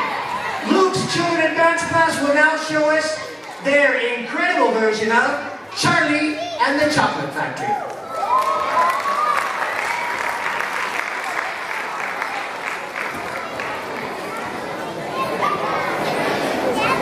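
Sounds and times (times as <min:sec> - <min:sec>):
children's voices and chatter: 0:00.0 - 0:17.0
audience applauding: 0:07.9 - 0:14.6.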